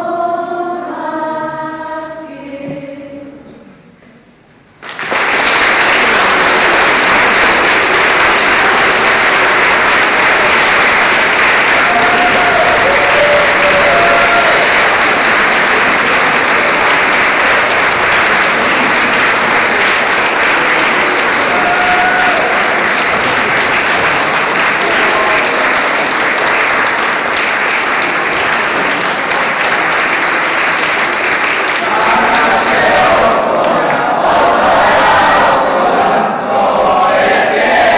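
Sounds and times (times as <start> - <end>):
audience applauding: 4.8 - 35.6.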